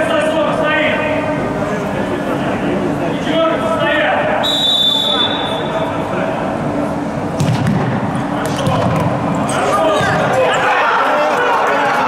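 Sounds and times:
referee's whistle: 4.4 - 5.7
players shouting: 9.4 - 12.0.

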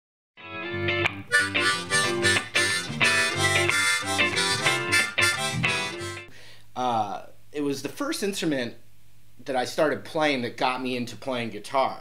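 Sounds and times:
harmonica playing: 1.2 - 6.3.

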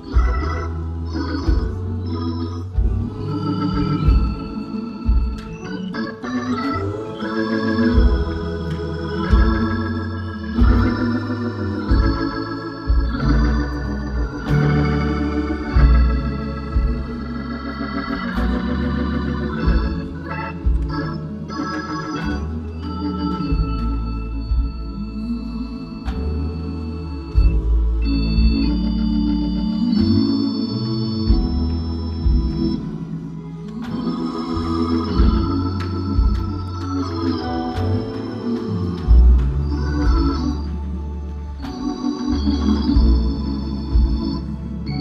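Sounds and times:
organ playing gospel song: 0.0 - 45.0.

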